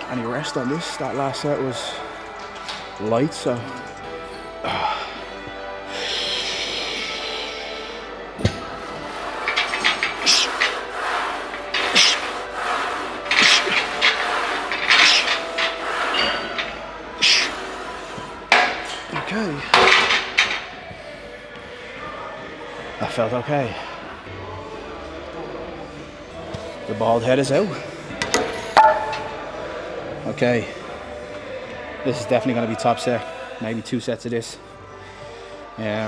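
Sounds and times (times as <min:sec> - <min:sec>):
background music: 0:00.0 - 0:36.0
man breathing hard: 0:04.6 - 0:08.3
weight bar clanking: 0:08.4 - 0:17.5, 0:18.5 - 0:20.7.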